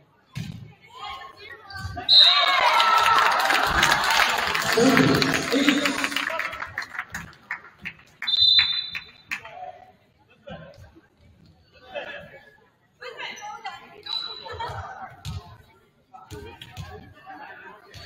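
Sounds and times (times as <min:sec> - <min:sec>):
referee's whistle blowing: 0:02.1 - 0:02.5, 0:08.2 - 0:09.3, 0:14.0 - 0:14.6
players and spectators cheering: 0:02.1 - 0:06.6.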